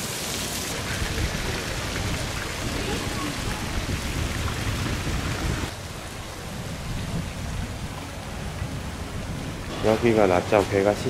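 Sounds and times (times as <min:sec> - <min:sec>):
wind buffeting microphone: 0:00.8 - 0:11.0.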